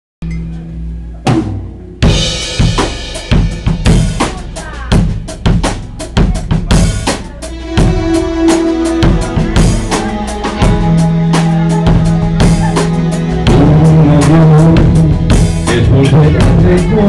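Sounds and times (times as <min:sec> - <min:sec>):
live rock band playing: 0:00.3 - 0:17.0
drum and cymbal hit: 0:01.2 - 0:17.0.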